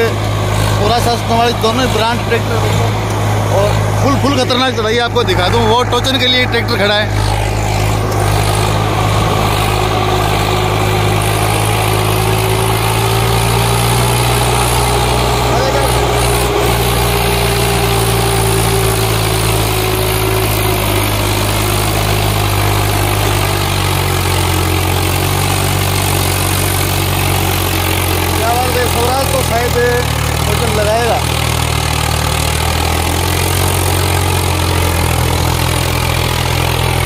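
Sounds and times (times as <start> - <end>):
tractor diesel engine under load: 0.0 - 37.0.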